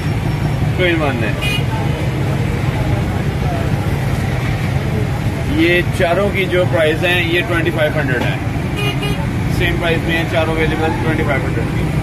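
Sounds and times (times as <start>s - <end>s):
faint voices: 0.0s - 12.0s
street traffic rumble: 0.0s - 12.0s.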